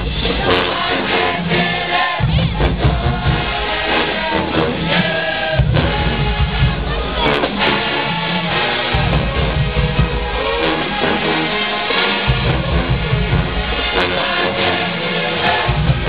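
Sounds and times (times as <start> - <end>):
deep bass: 0.0 - 11.4, 12.2 - 14.7
marching band playing: 0.0 - 16.0.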